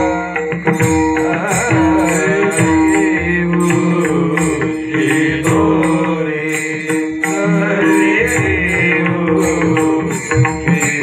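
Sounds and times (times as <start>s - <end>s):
men singing in chorus: 0.0s - 11.0s.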